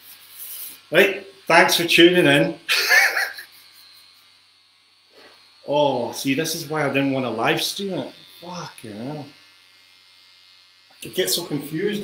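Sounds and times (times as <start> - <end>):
man laughing breathily: 2.7 - 4.1.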